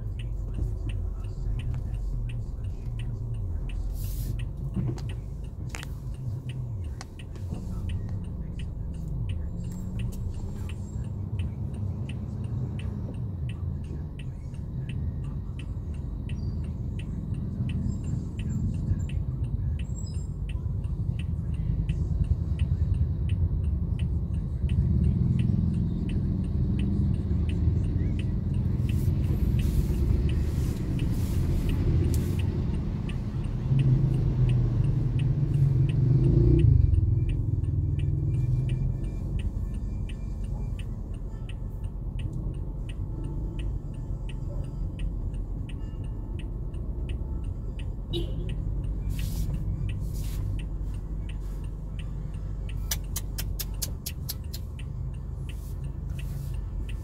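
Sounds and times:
car idling rumble: 0.0s - 57.0s
faint regular ticking: 0.0s - 57.0s.

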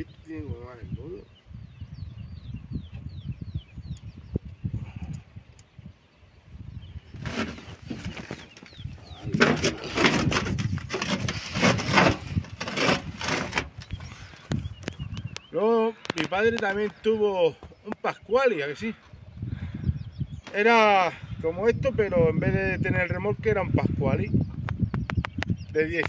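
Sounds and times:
small birds chirping: 0.0s - 26.0s
rustling and knocking: 7.2s - 14.6s.

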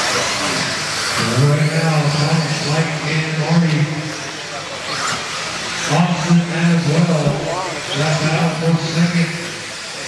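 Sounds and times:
radio-controlled cars running: 0.0s - 10.0s.

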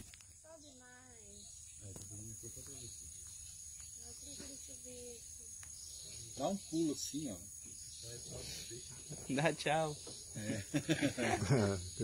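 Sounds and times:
insect chorus drone: 0.0s - 12.0s.

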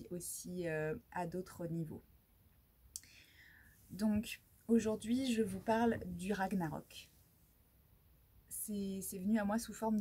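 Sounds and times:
soft mouth click: 2.9s - 3.2s
short quiet breath: 3.0s - 3.9s.

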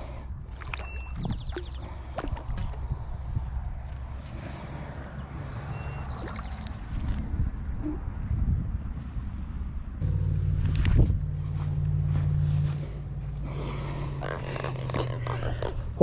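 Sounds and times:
water splashing: 5.6s - 7.3s
microphone handling rumble: 6.8s - 16.0s
low steady hum: 9.0s - 16.0s.

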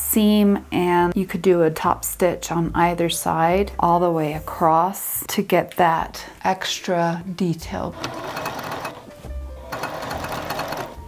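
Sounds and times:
sewing machine stitching: 7.9s - 11.0s.

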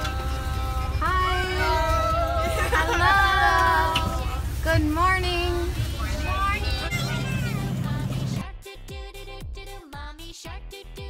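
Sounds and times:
bus engine hum: 0.0s - 8.4s
children's voices: 5.4s - 8.4s.

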